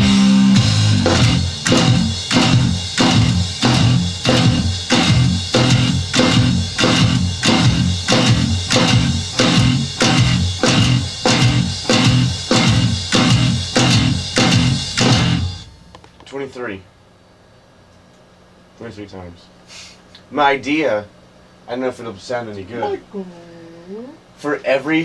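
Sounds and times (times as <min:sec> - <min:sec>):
drum kit pounding beat: 0:00.0 - 0:16.0
electric bass guitar: 0:00.0 - 0:16.2.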